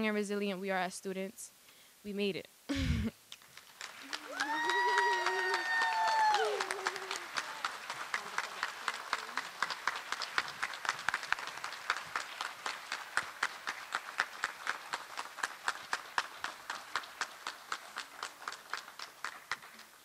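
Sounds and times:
small audience applauding: 3.3 - 20.0.

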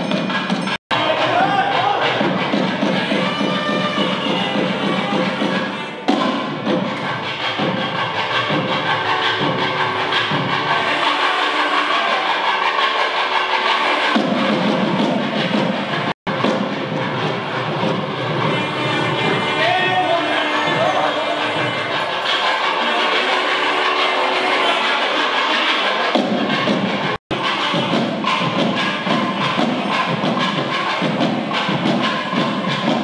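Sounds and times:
rhythmic drum strokes: 0.0 - 33.0
reedy wind instrument melody: 0.9 - 33.0.

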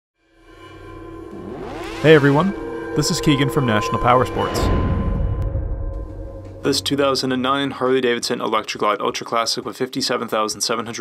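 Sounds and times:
logo sound effect with rising sweep: 0.5 - 7.7.

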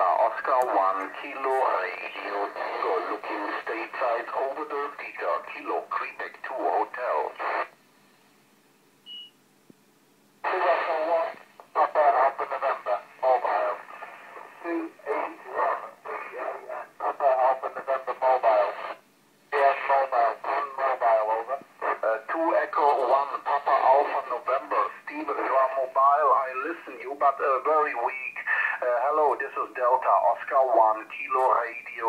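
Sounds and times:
radio voices: 0.0 - 7.7, 10.4 - 32.0.

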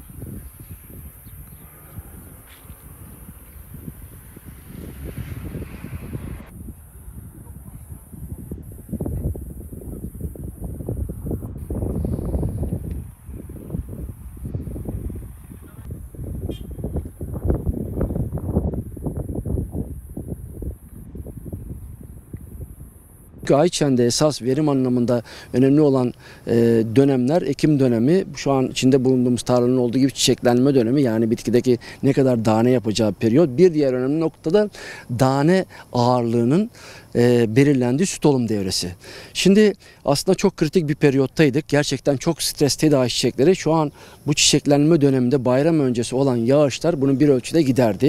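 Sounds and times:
wind buffeting microphone: 0.0 - 35.6.

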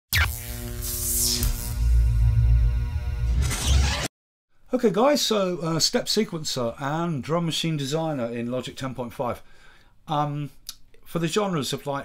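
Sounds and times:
electronic intro sting: 0.1 - 4.1.

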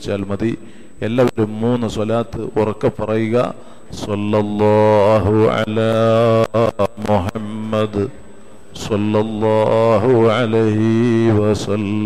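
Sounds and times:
man preaching: 0.0 - 8.2, 8.8 - 12.0.

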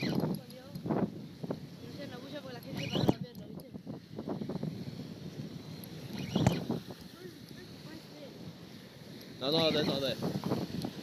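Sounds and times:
fishing reel clicking: 0.0 - 1.0, 2.3 - 3.8, 5.0 - 7.7
wind on microphone: 0.0 - 11.0.

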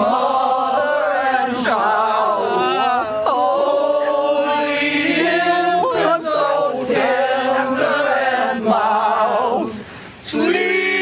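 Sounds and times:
group singing together: 0.0 - 11.0.

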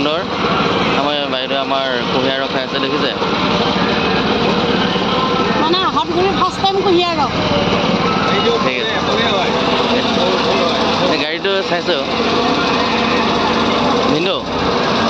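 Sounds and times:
small petrol engine running: 0.0 - 15.0
voices: 0.0 - 15.0.

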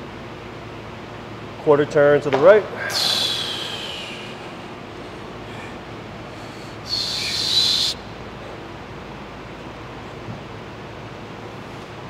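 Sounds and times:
low room hum: 0.0 - 12.0
hiss with high whistling tone: 2.8 - 4.6, 6.8 - 8.0.

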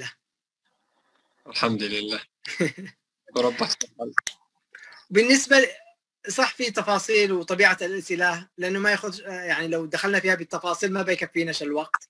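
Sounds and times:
man speaking: 1.5 - 4.2, 4.8 - 12.0.

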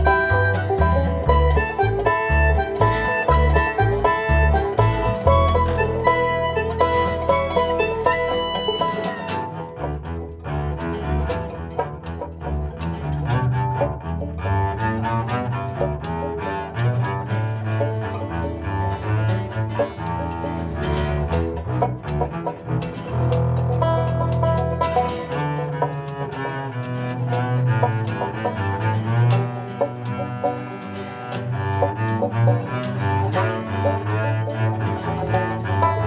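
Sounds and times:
bowed double bass: 0.0 - 36.0
string band playing: 0.0 - 36.0.

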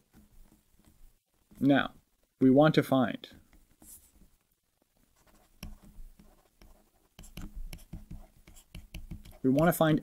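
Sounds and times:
stylus scratching on tablet screen: 5.1 - 10.0.

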